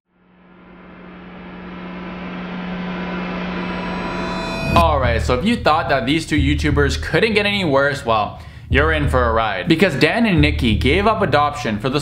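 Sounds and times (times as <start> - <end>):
low droning hum: 0.1 - 6.8.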